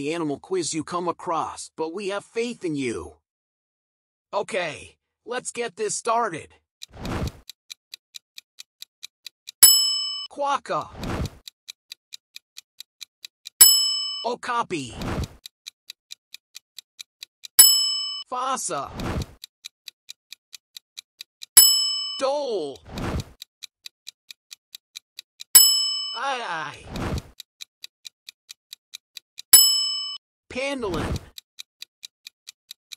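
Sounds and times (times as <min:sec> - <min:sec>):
clock ticking: 0:06.6 - 0:32.9
bright bell ding: 0:09.6 - 0:10.3, 0:13.6 - 0:14.3, 0:17.6 - 0:18.2, 0:21.6 - 0:22.2, 0:25.6 - 0:26.2, 0:29.6 - 0:30.2.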